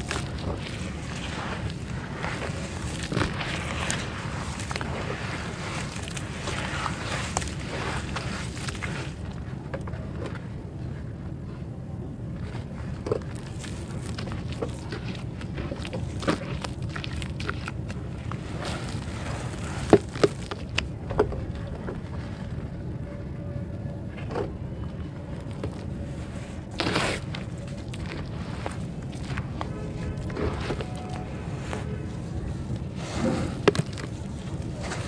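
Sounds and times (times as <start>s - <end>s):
fingers crumbling crunchy dirt: 0.0s - 9.5s, 12.4s - 22.1s, 24.8s - 35.0s
wet mud being mashed: 0.0s - 9.5s, 12.6s - 22.1s, 25.4s - 35.0s
steady low rumble: 0.0s - 35.0s.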